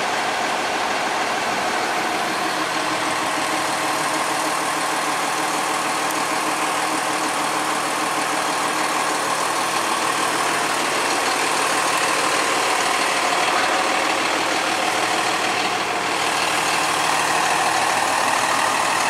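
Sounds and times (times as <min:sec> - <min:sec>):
diesel engine idling: 0:00.0 - 0:19.0.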